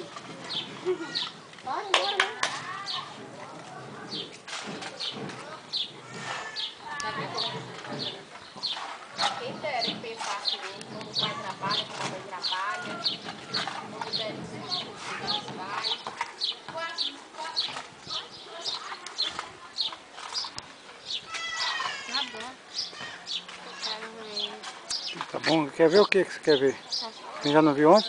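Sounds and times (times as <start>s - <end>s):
bird chirping: 0.0s - 28.0s
faint voices: 0.0s - 28.0s.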